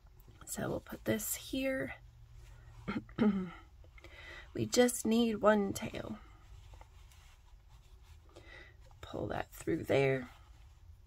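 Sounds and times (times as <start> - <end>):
faint yarn rustling: 0.0 - 11.0
low steady hum: 0.0 - 11.0.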